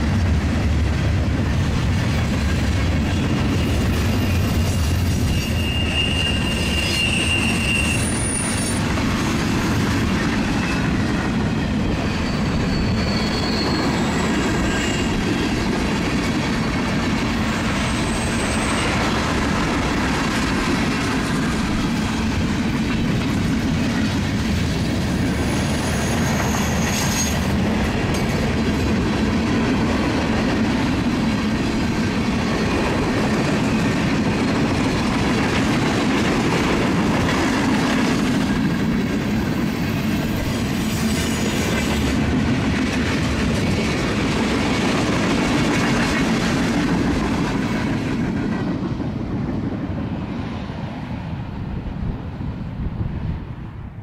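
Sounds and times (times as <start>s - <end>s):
train wheels rumbling on rails: 0.0s - 54.0s
high-pitched wheel squeals: 3.2s - 8.9s, 10.4s - 15.7s, 16.5s - 19.1s, 25.4s - 27.5s.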